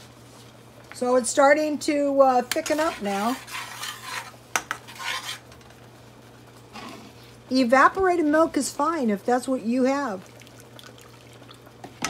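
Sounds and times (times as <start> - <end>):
low steady hum: 0.0 - 12.0
spatula scraping sauce in pan: 2.5 - 5.5.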